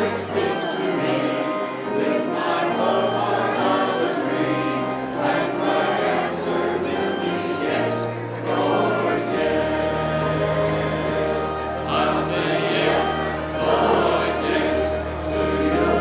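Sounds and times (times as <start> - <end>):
choir singing a hymn: 0.0 - 16.0
instrumental accompaniment: 0.0 - 16.0.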